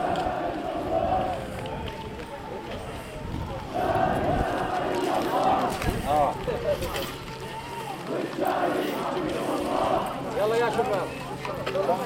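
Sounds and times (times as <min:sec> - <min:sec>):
crowd shouting together: 0:00.0 - 0:06.4, 0:07.2 - 0:11.0.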